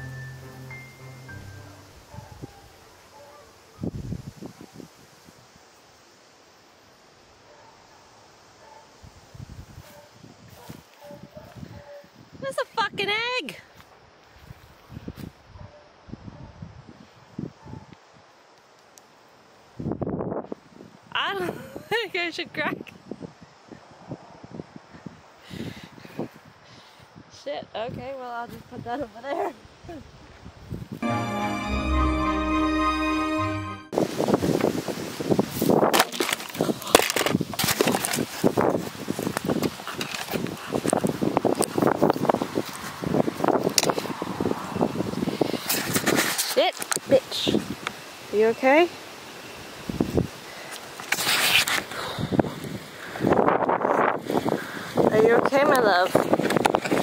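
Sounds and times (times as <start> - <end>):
outdoor background hiss: 0.0 - 57.0
camera handling rustling and scraping: 35.9 - 38.4, 39.6 - 41.0, 51.0 - 51.9.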